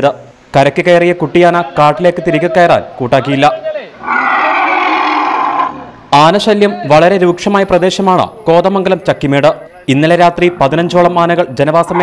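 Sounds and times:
elephant calf trumpeting: 0:04.0 - 0:06.0.

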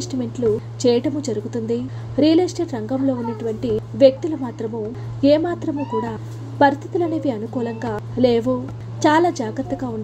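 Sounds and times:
steady low hum: 0:00.0 - 0:10.0
woman narrating: 0:00.0 - 0:10.0.

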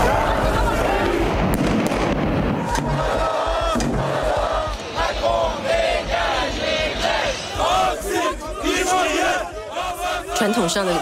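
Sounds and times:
crowd chanting and shouting: 0:00.0 - 0:11.0.

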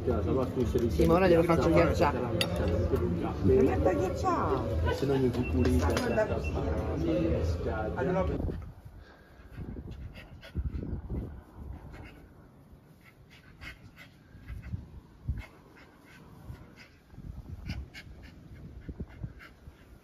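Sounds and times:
dog noises: 0:00.8 - 0:07.6.

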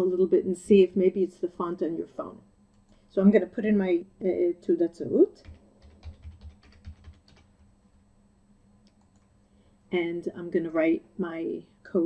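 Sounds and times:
computer keyboard keystrokes: 0:05.4 - 0:07.7.

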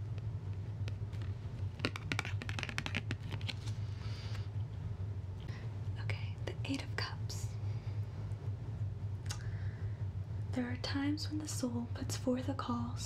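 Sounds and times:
steady low hum: 0:00.0 - 0:13.0
fingers tapping card: 0:00.8 - 0:03.7.

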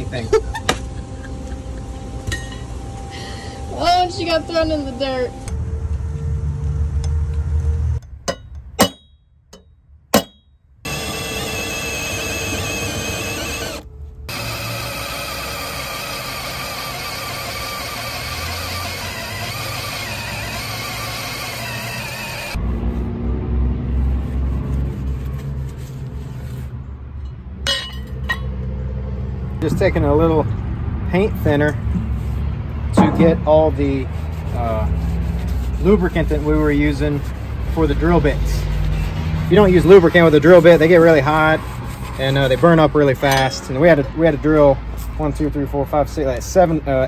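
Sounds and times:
hammer tapping metal punch: 0:08.2 - 0:10.5
drill boring through steel: 0:10.9 - 0:22.6.

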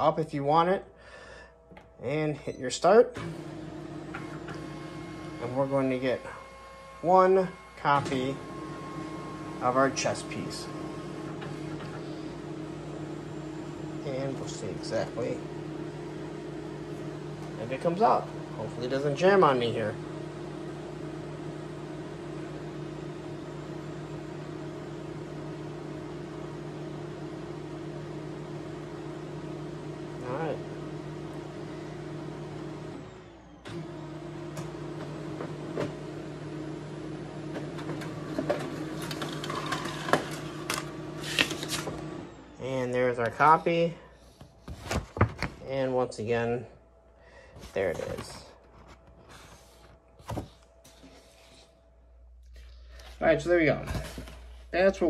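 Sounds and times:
laser copier running: 0:02.8 - 0:44.0.

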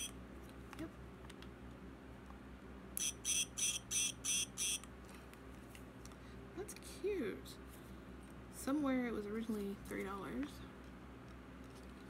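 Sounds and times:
high electronic chirps: 0:03.0 - 0:04.8.

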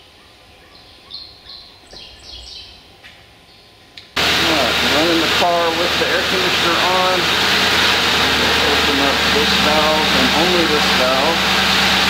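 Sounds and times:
small bird chirping: 0:00.6 - 0:02.8.

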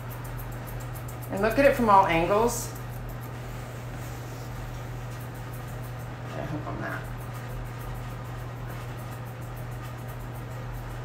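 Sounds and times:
steady low hum: 0:00.0 - 0:11.0
woman's voice: 0:01.3 - 0:02.8.

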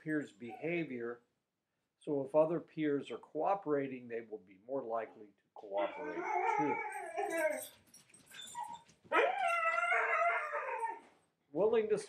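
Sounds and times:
animal howling: 0:05.6 - 0:07.7, 0:09.1 - 0:11.0.

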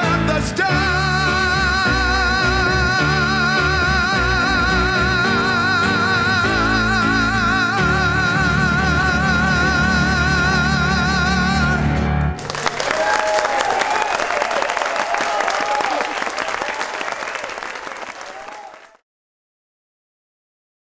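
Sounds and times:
man singing long note: 0:00.0 - 0:12.1
band playing: 0:00.0 - 0:13.6
audience applauding: 0:12.4 - 0:19.0.

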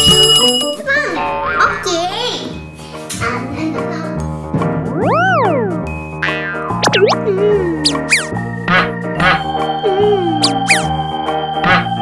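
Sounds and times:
children's background music: 0:00.0 - 0:12.0
pitch-sliding swoops: 0:04.9 - 0:08.3, 0:10.4 - 0:10.9
cartoon springy boings: 0:04.9 - 0:09.4, 0:10.4 - 0:10.9.

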